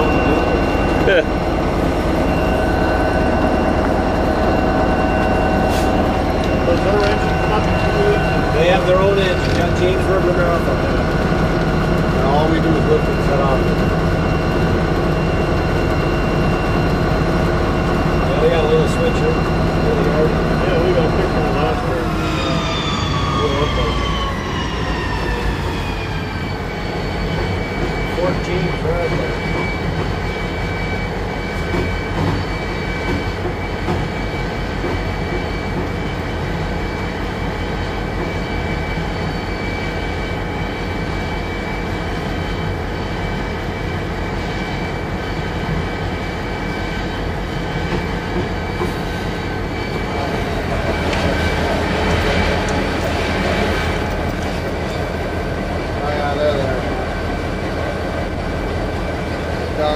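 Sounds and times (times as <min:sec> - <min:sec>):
diesel locomotive engine droning: 0:00.0 - 0:59.9
high steady whine: 0:00.0 - 0:59.9
wheels rumbling on rail: 0:00.0 - 0:59.9.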